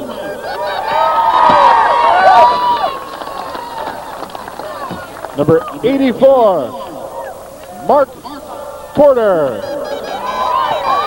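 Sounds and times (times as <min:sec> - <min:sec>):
crowd cheering and yelling: 0:00.0 - 0:11.0.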